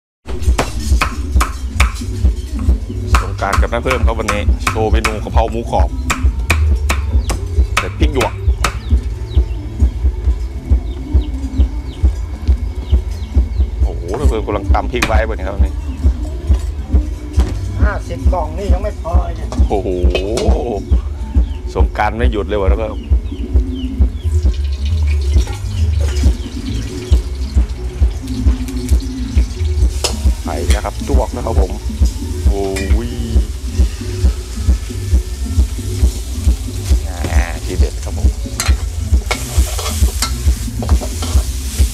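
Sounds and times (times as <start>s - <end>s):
cleaver chopping on wooden board: 3.1s - 5.2s, 6.1s - 8.9s
metal ladle scraping in wok: 38.6s - 41.9s.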